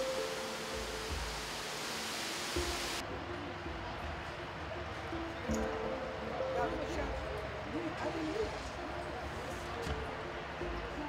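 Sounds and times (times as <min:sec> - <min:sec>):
static-like hiss: 0:00.0 - 0:03.0
faint background music: 0:00.0 - 0:11.0.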